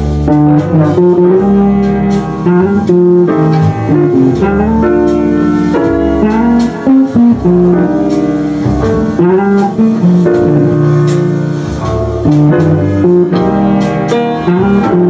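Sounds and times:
jazz guitar playing: 0.0 - 15.0
piano accompaniment: 0.0 - 15.0.

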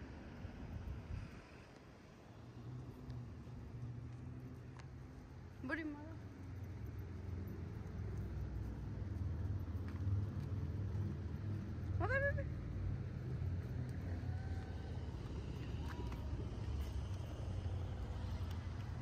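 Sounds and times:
traffic rumble: 0.0 - 19.0.

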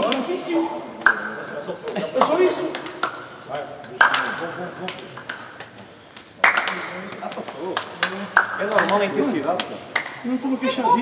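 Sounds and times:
men talking in echoing hall: 0.0 - 11.0
hand claps and slaps: 1.0 - 10.3.

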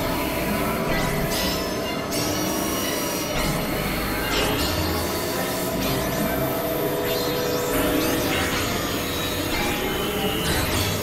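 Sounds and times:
hissing synthesizer drone: 0.0 - 11.0.

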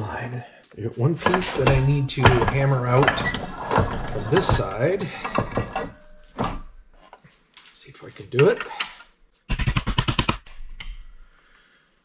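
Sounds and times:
metal punch knocking on metal part: 1.2 - 6.9.

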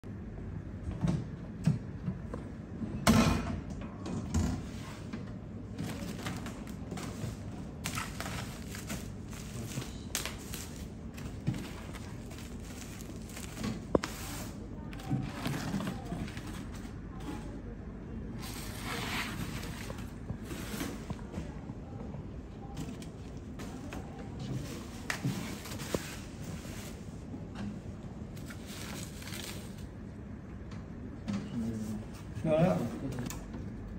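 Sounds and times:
plastic packaging rustling: 5.8 - 16.8, 28.4 - 29.9.

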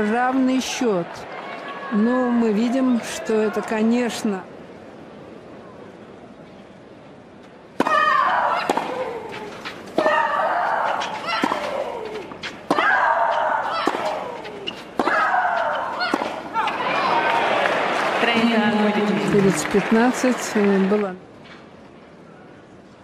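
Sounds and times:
tennis racket strikes: 10.9 - 16.4
crowd applause: 16.6 - 21.2.

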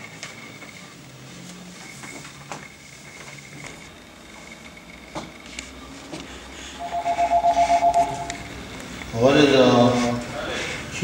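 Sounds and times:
pulsing high tone: 6.8 - 8.6.

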